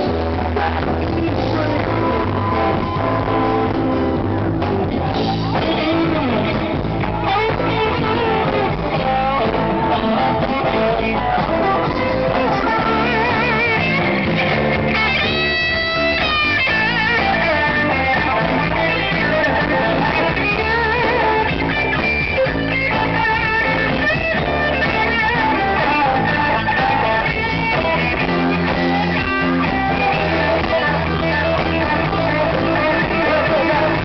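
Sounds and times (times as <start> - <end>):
bass guitar: 0.0 - 34.0
electric guitar solo: 0.0 - 34.0.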